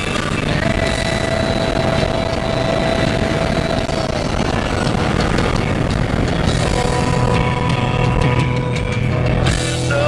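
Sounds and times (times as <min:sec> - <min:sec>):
car engine: 0:00.0 - 0:10.0
held whine: 0:00.0 - 0:10.0
wind noise: 0:00.0 - 0:10.0.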